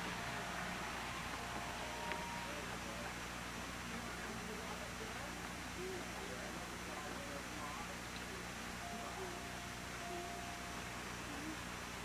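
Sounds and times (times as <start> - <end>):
thin steady tone: 0.0 - 3.5, 8.8 - 12.0
faint distant voices: 0.0 - 12.0
steady background hiss: 0.0 - 12.0.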